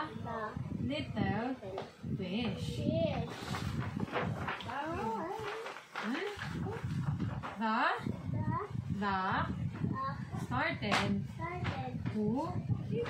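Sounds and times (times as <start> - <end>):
voices reading aloud: 0.0 - 13.0.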